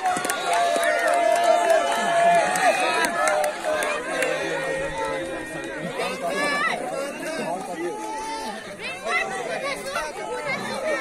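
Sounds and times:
crowd voices talking and calling out: 0.0s - 11.0s.

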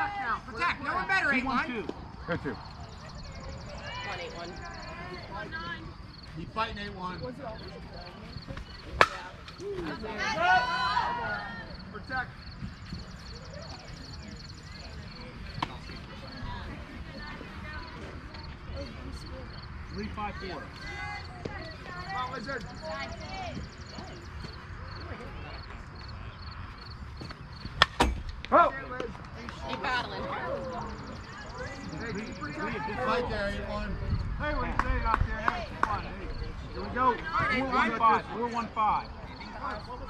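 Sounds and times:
sharp cracks of softball: 8.6s - 9.6s, 27.7s - 29.8s
bat cracking a ball: 8.9s - 9.5s, 27.8s - 28.3s
spectators shouting and cheering: 9.6s - 12.0s.

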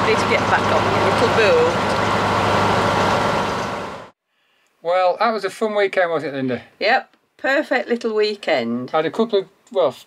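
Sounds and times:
diesel engine running: 0.0s - 4.2s.

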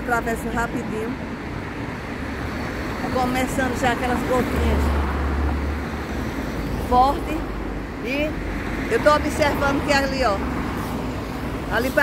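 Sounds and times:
traffic hiss: 5.8s - 12.0s.

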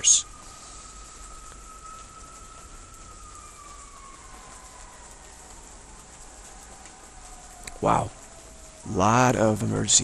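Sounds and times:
distant siren: 0.0s - 10.0s.

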